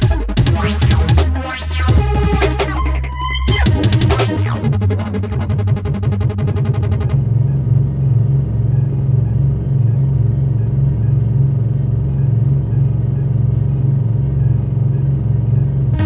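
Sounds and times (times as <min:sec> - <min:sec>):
deep synthesizer bass line: 0:00.0 - 0:16.0.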